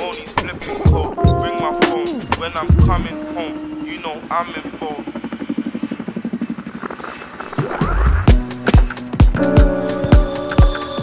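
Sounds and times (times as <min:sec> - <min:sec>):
helicopter rotor chopping: 0:00.0 - 0:09.0.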